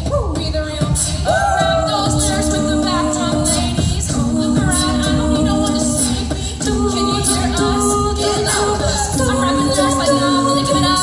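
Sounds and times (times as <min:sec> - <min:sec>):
steady beat: 0:00.0 - 0:11.0
women singing a cappella: 0:00.0 - 0:11.0.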